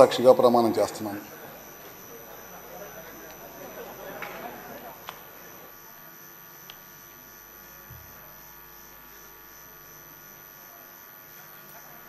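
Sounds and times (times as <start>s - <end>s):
electrical hum: 0.0s - 12.0s
faint click: 6.6s - 6.8s.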